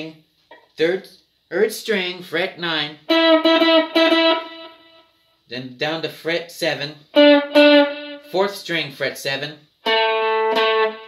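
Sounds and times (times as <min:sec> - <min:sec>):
electric guitar note: 0:03.1 - 0:05.0, 0:07.2 - 0:08.4, 0:09.8 - 0:11.0.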